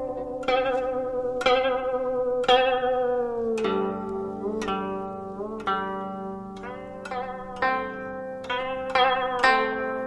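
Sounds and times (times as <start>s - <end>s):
plucked zither notes with vibrato: 0.0s - 10.0s.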